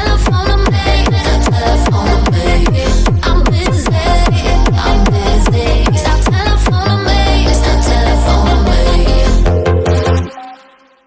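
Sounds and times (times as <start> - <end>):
hard techno track: 0.0 - 10.6.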